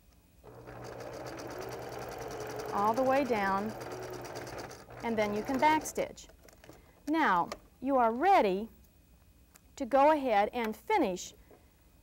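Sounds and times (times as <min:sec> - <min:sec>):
sewing machine stitching: 0:00.5 - 0:06.2.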